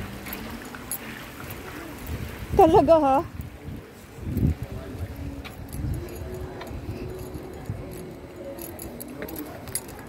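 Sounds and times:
water running in water feature: 0:00.0 - 0:10.0.

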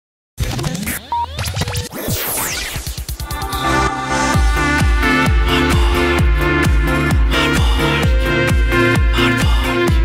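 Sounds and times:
radio jingle whooshes: 0:00.4 - 0:03.2
low bass: 0:03.3 - 0:10.0.

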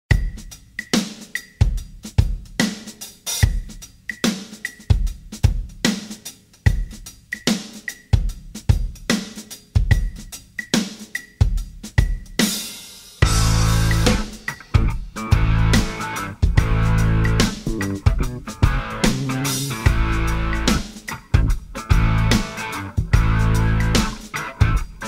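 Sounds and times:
rock drum beat: 0:00.1 - 0:25.0
rock band with bass and guitar: 0:13.2 - 0:25.0.

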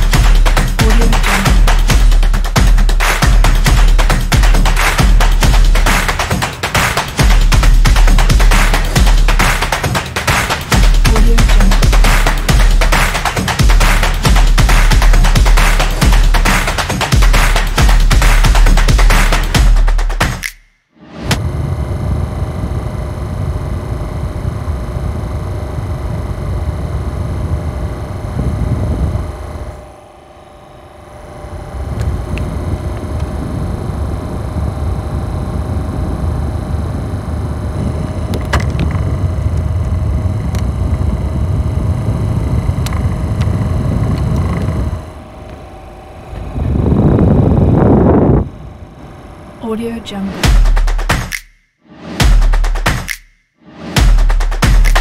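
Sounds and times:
faint motor hum: 0:00.0 - 0:19.8, 0:21.4 - 0:51.0
small fan whirring: 0:00.0 - 0:20.4, 0:21.3 - 0:51.4.

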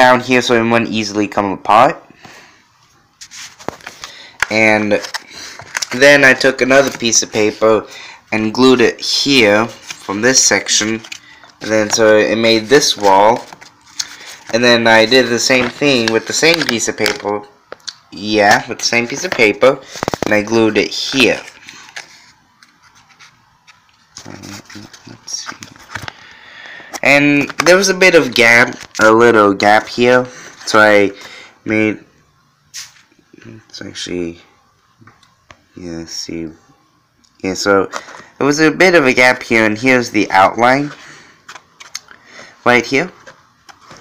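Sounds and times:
paper rustling: 0:03.2 - 0:17.4, 0:18.6 - 0:26.3, 0:43.1 - 0:44.0
paper box clicks and rustling: 0:03.6 - 0:06.0, 0:15.5 - 0:17.3, 0:19.1 - 0:20.5.

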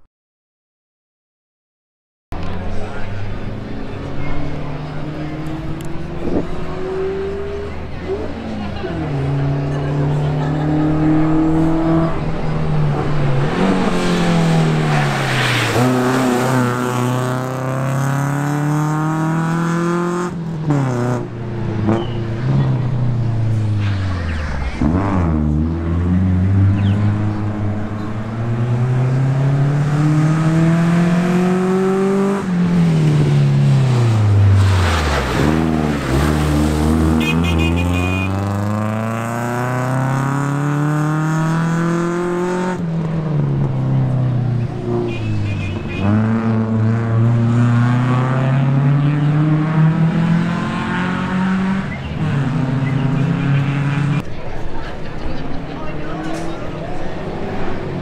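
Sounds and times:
rally car engine revving: 0:02.4 - 0:54.3.

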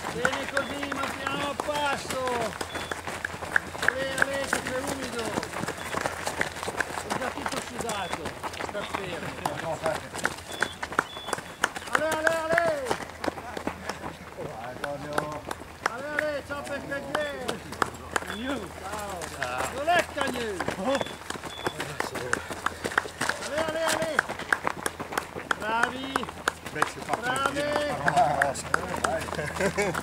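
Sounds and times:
footsteps crunching on gravel: 0:00.0 - 0:30.0
voices calling out: 0:00.0 - 0:30.0.

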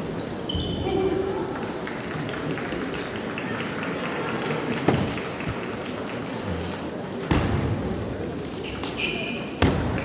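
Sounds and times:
murmur of crowd voices: 0:00.0 - 0:10.0.

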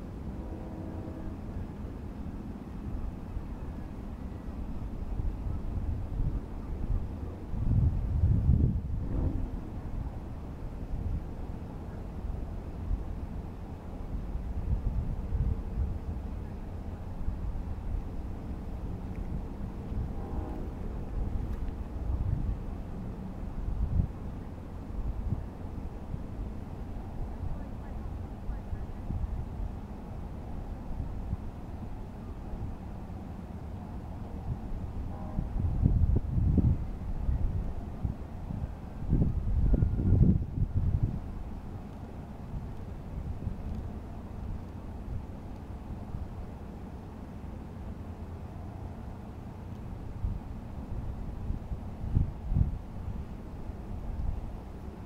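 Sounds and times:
wind buffeting microphone: 0:05.0 - 0:13.1, 0:17.2 - 0:27.7, 0:34.4 - 0:45.3, 0:50.1 - 0:54.7.

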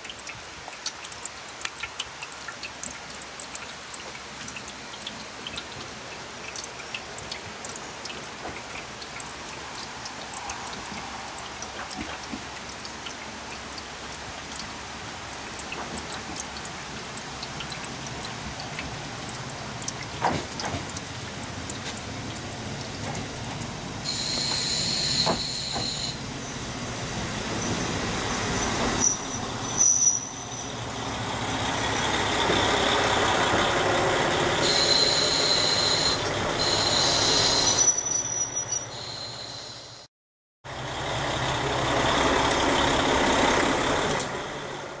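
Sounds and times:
rain falling: 0:00.0 - 0:25.2, 0:26.1 - 0:35.7, 0:40.7 - 0:45.0
diesel railcar engine running: 0:22.6 - 0:39.9, 0:40.7 - 0:45.0
high brake squeals: 0:24.0 - 0:26.6, 0:27.6 - 0:30.9, 0:34.6 - 0:40.1.

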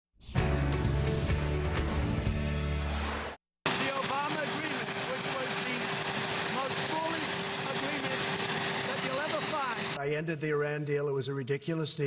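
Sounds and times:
man talking: 0:03.7 - 0:05.9, 0:06.5 - 0:08.3, 0:08.9 - 0:12.0
helicopter turbine engines running: 0:03.7 - 0:10.0.

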